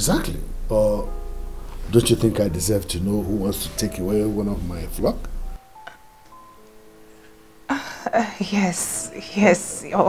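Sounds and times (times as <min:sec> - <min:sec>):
low bass music bed: 0:00.0 - 0:07.6
soft sustained bell-like notes: 0:00.1 - 0:10.0.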